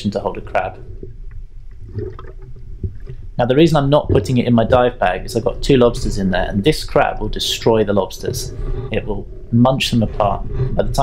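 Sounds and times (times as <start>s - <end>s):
muffled underwater rumble: 0.0s - 11.0s.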